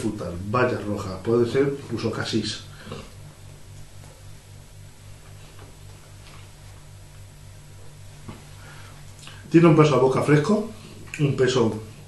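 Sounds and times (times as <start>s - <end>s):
pulsing electrical hum: 0.0s - 12.0s.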